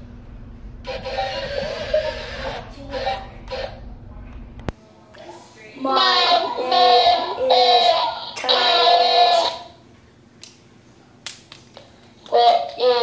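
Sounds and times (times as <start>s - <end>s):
robotic electronic voice: 0.9s - 3.8s, 5.8s - 9.8s, 12.3s - 13.0s.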